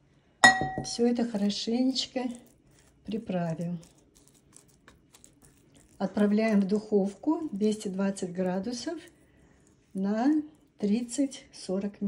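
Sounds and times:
seasoning sprinkled ticks and rustles: 1.0s - 12.0s.

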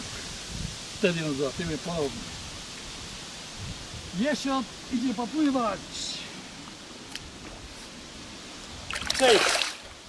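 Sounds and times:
light wind hiss: 0.0s - 10.0s.

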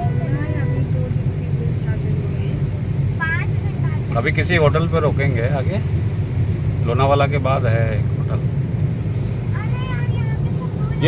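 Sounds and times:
faint passenger voices: 0.0s - 8.6s, 9.4s - 11.0s
car road and engine rumble: 0.0s - 11.0s.

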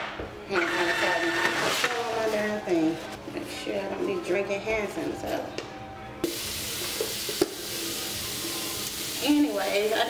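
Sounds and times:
tap water running into sink: 6.3s - 7.8s.

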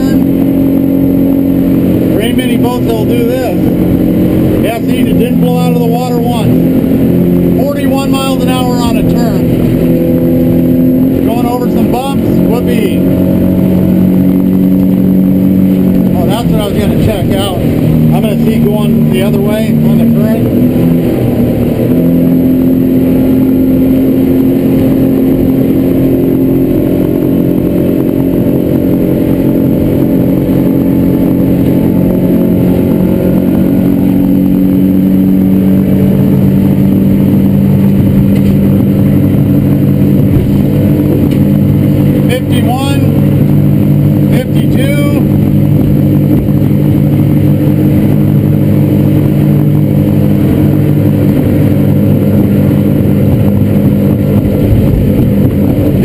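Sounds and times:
outboard engine running: 0.0s - 56.0s.

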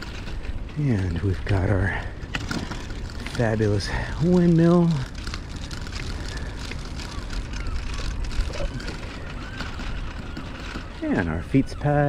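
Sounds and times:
bicycle tyres rolling on pavement: 0.0s - 12.0s.

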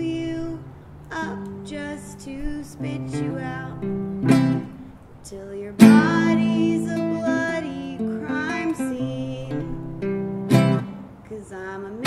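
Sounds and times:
acoustic guitar strummed: 1.2s - 4.9s, 5.8s - 11.3s.

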